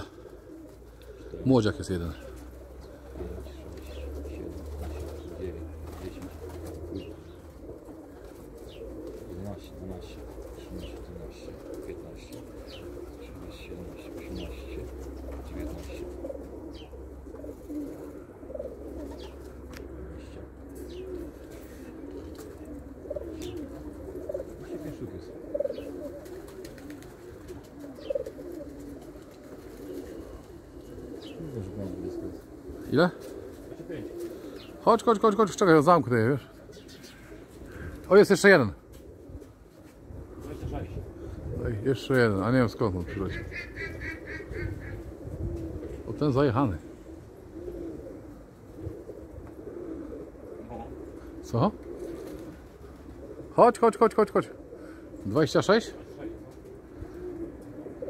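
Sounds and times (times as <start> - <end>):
pigeons cooing: 0.0 - 58.0
wing flaps: 3.3 - 9.4, 25.9 - 31.2.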